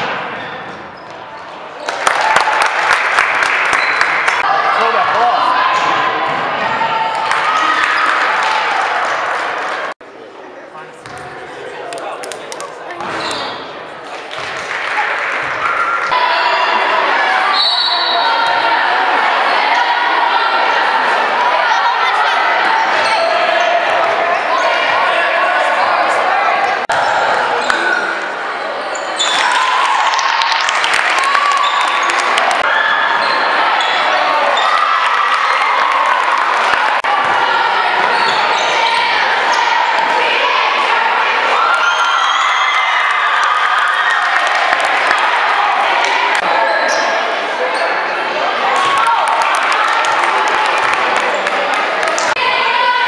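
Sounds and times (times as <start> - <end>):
sneakers squeaking on court: 0.3 - 1.5, 11.0 - 11.3, 13.0 - 13.8, 38.1 - 38.8, 46.6 - 48.0
basketball bouncing: 11.0 - 11.3.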